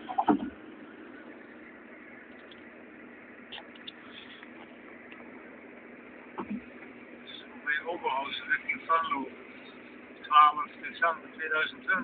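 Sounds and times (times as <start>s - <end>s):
car running and road noise: 0.0s - 12.0s.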